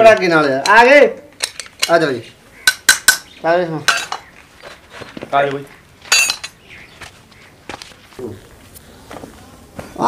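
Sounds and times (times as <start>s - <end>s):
metal hand tools clinking: 1.4s - 3.3s, 3.9s - 4.3s, 6.1s - 6.6s.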